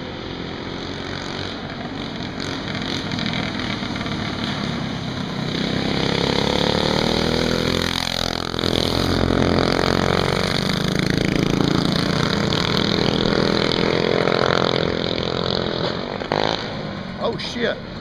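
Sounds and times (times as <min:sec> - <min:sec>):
go-kart engines revving: 0:00.0 - 0:18.0
go-kart passing by: 0:00.0 - 0:18.0.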